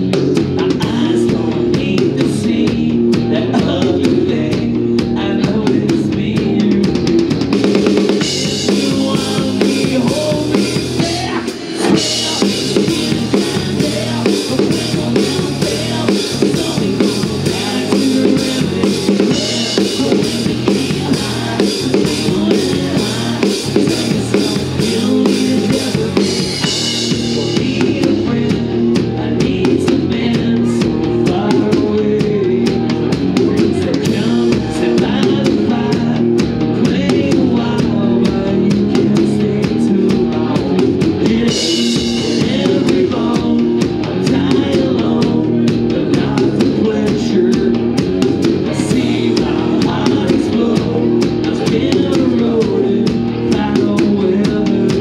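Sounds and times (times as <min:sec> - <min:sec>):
rock band playing: 0:00.0 - 0:55.0.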